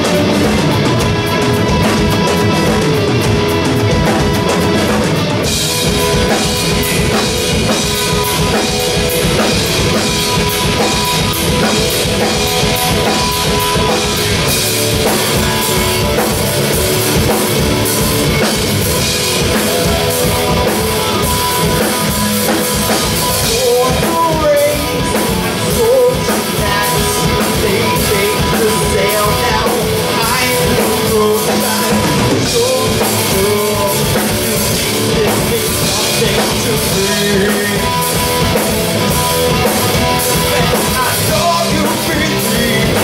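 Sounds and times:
drum kit beating: 0.0 - 43.0
electric guitars: 0.0 - 43.0.

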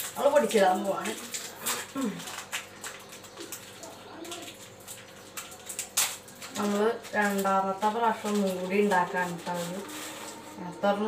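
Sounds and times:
plastic wrapper crinkling: 0.0 - 11.0.

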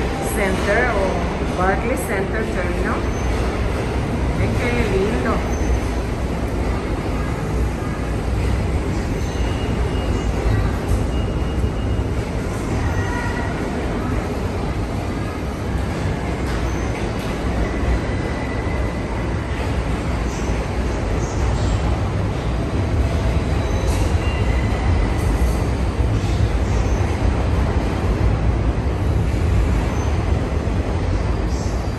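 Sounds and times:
subway train rumbling: 0.0 - 31.9.

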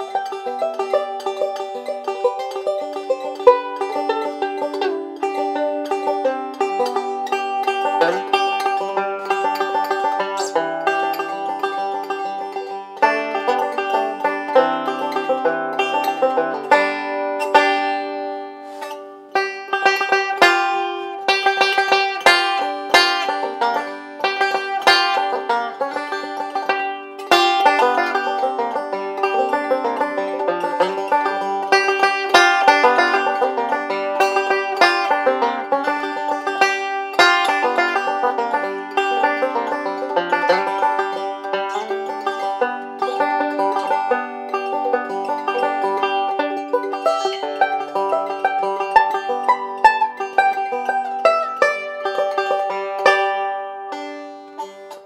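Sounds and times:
banjo fingerpicking: 0.0 - 55.0.

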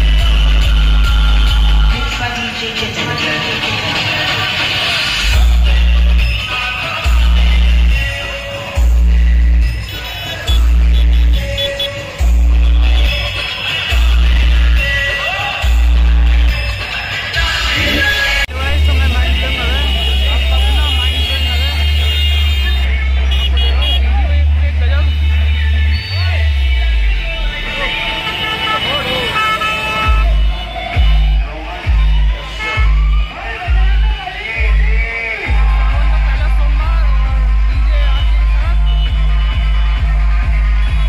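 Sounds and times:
deep bass notes: 0.0 - 2.2, 5.2 - 6.3, 7.0 - 8.2, 8.8 - 9.7, 12.2 - 13.2, 15.6 - 16.6, 17.6 - 28.2, 30.0 - 41.0
crowd voices and shouting: 0.0 - 41.0
loud dj music: 0.0 - 41.0.

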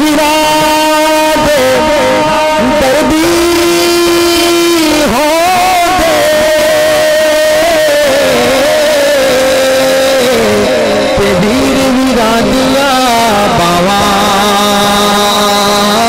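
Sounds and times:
man singing devotional song: 0.0 - 16.0.

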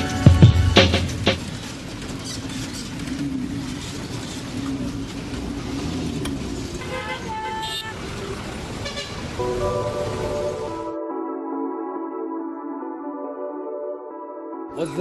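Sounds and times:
street traffic engines: 0.0 - 11.0
vehicle horn tooting: 6.8 - 8.2, 8.8 - 9.4
soft music: 9.4 - 15.0.

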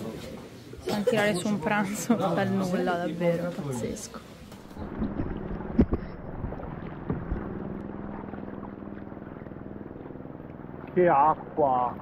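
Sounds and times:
steady low drone: 4.6 - 12.0.

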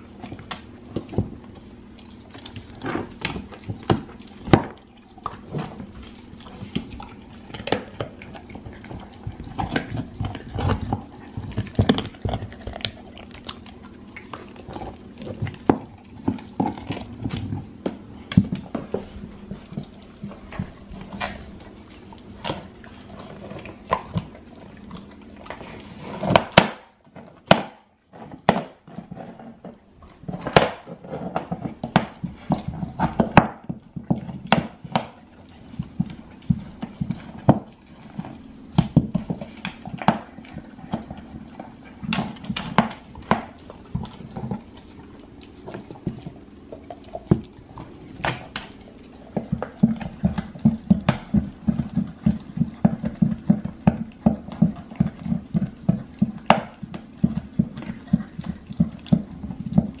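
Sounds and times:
dog chewing bone: 0.0 - 60.0.

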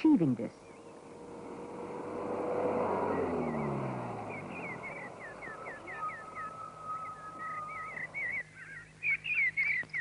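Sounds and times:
minibus driving past: 0.0 - 8.4.

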